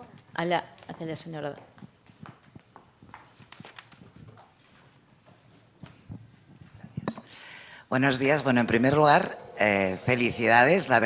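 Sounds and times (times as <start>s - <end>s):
footsteps on hard floor: 1.5s - 6.8s.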